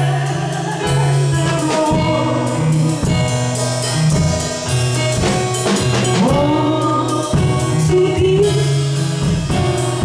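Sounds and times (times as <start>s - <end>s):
woman singing gospel: 0.0s - 3.5s, 6.1s - 9.0s
instrumental backing with beat: 0.0s - 10.0s.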